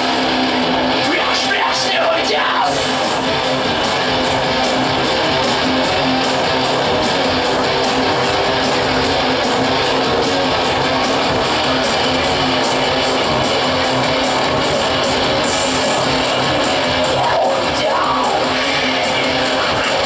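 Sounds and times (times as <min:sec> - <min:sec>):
metal band playing loudly: 0:00.0 - 0:20.0.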